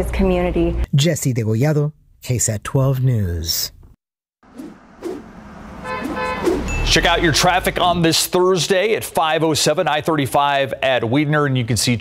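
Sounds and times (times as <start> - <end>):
car sound effects: 4.4 - 9.2
car horn honk: 5.7 - 8.0.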